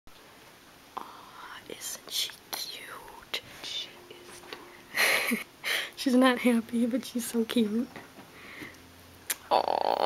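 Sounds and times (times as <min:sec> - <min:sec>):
person whispering: 0:01.0 - 0:04.6.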